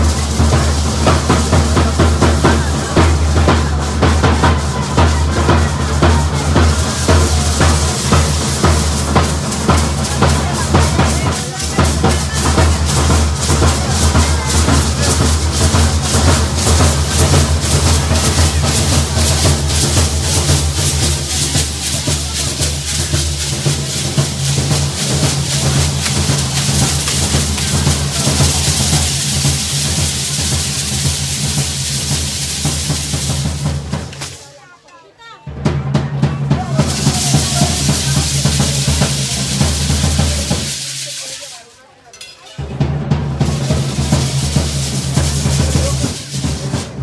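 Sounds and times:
bass drums beaten in rhythm: 0.0s - 34.4s, 35.5s - 41.1s, 42.6s - 47.0s.

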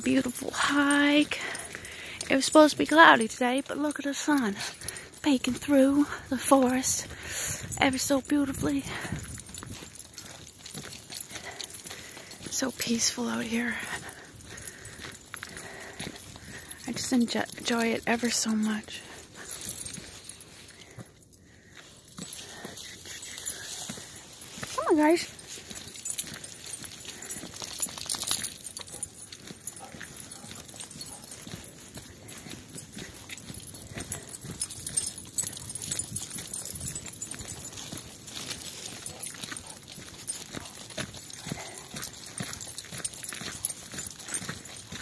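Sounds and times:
footsteps on dirt trail: 0.0s - 45.0s
jingling of collar tags: 0.0s - 45.0s.

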